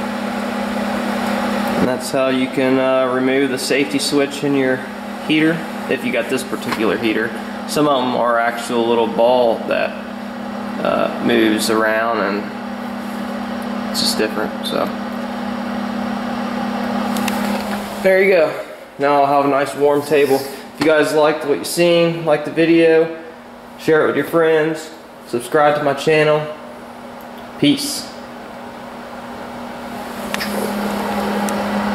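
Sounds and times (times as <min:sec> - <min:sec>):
fan heater humming: 0:00.0 - 0:31.9
short click: 0:30.3 - 0:30.6.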